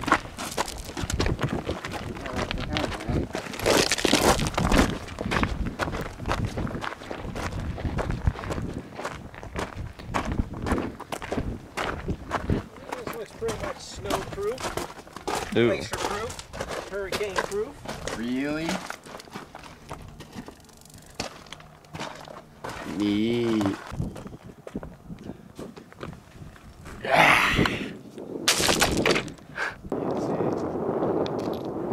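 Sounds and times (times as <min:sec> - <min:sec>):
footsteps on gravel: 0:00.0 - 0:27.0
person's voice: 0:22.9 - 0:23.8.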